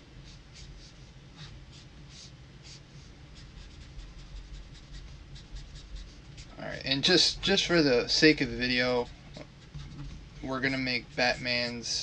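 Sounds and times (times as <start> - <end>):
marker scratching on paper: 0.2 - 6.6, 8.3 - 11.9.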